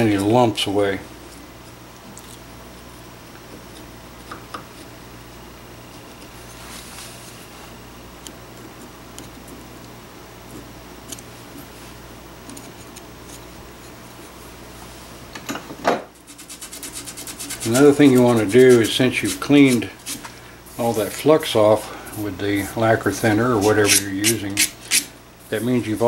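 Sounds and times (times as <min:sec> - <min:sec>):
steady shop hum: 0:00.0 - 0:26.0
chisel scraping metal: 0:16.3 - 0:20.2, 0:23.6 - 0:25.1.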